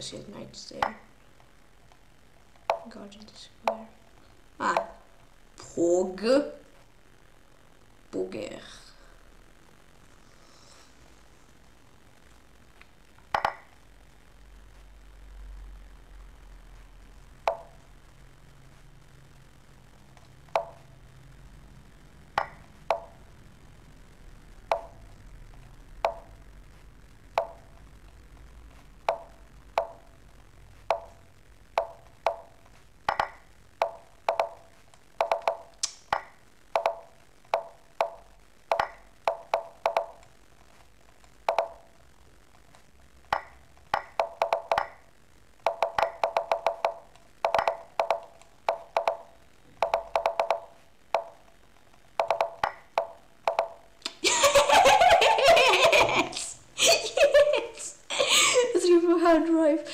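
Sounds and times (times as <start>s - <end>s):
chess move click sounds: 0.7s - 1.1s, 2.6s - 2.9s, 4.6s - 5.0s, 13.2s - 13.8s, 17.5s - 17.8s, 20.2s - 20.8s, 22.3s - 23.2s, 24.7s - 25.0s, 27.4s - 27.6s, 29.0s - 30.0s, 30.9s - 31.2s, 31.8s - 32.5s, 33.1s - 34.6s, 35.2s - 40.3s, 41.5s - 41.8s, 43.3s - 45.0s, 45.6s - 51.4s, 52.2s - 54.2s.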